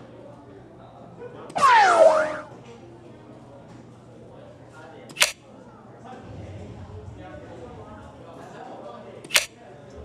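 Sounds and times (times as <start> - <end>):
low chatter: 0.0 - 10.0.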